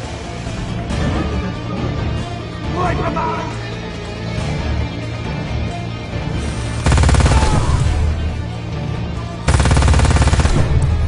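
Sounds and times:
orchestral film music: 0.0 - 11.0
rotary machine gun firing: 6.8 - 8.0, 9.5 - 11.0.

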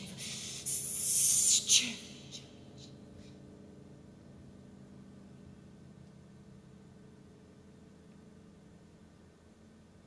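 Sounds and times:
woman making hissing shh sounds: 0.4 - 1.5.

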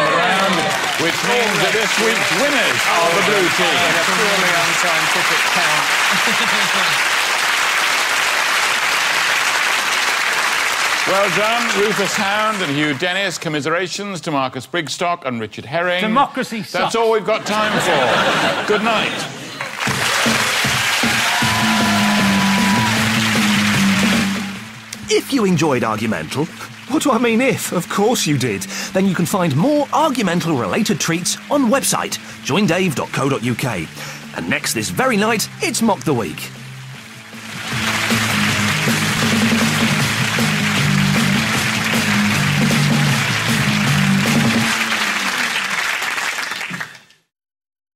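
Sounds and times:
theme music with low notes: 0.0 - 5.7, 19.9 - 45.2
studio audience applauding: 0.0 - 13.9, 17.6 - 47.3.

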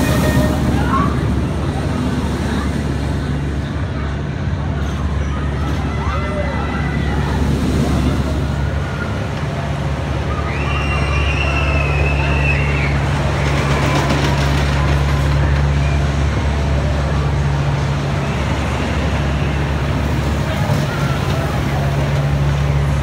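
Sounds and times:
diesel engine droning: 0.0 - 23.0
wheels rumbling on track: 0.0 - 23.0.

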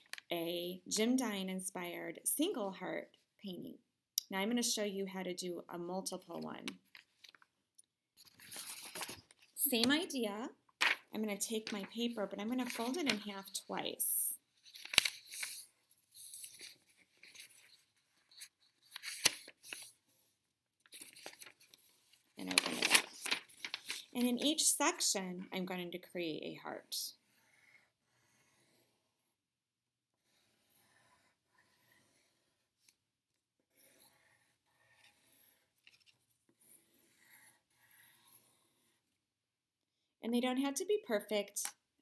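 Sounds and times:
paper rustling and swishing: 8.2 - 9.3, 14.6 - 20.0, 20.9 - 24.4
pencil scratching on paper: 30.2 - 32.9.

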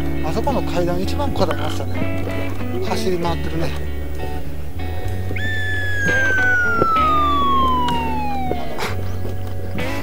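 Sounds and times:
background music: 0.0 - 10.0
slide whistle gliding down: 5.4 - 9.1.

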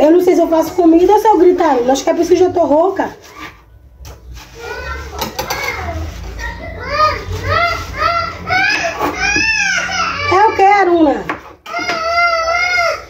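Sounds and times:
child wailing: 4.6 - 10.9, 11.6 - 13.0.

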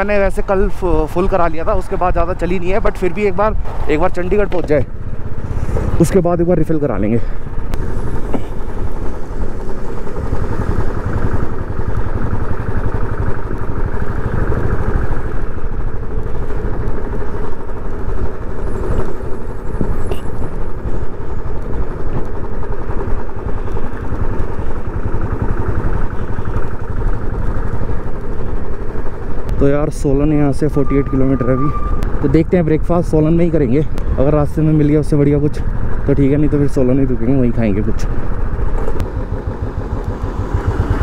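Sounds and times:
heavy wind rush: 0.0 - 13.0
motorcycle engine running: 0.0 - 41.0.

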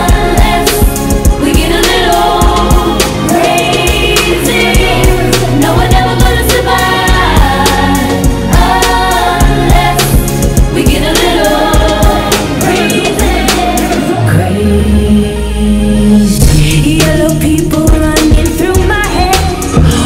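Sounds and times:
drum beat: 0.0 - 14.1
bass notes: 0.0 - 20.0
female vocal group singing: 0.0 - 20.0.

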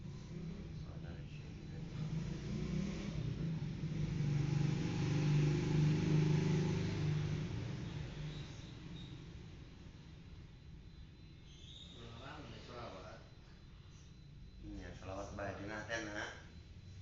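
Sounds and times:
vehicle engine passing by: 0.0 - 10.6.

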